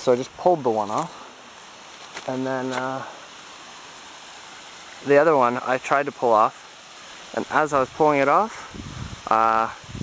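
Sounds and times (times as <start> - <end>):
stream rushing: 0.0 - 10.0.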